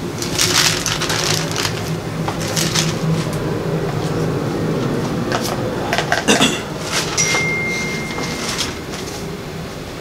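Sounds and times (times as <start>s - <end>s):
steady low hum: 0.0s - 10.0s
paper pages rustling: 0.2s - 4.2s.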